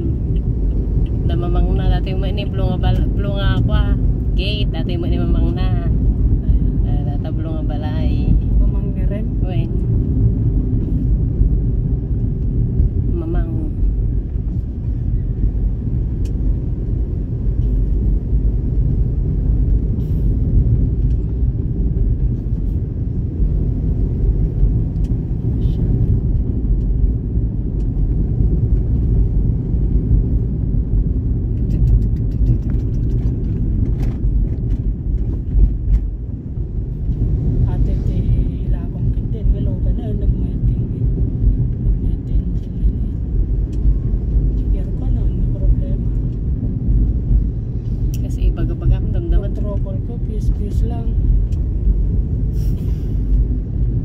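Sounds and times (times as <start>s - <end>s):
car engine and tyre rumble: 0.0s - 54.0s.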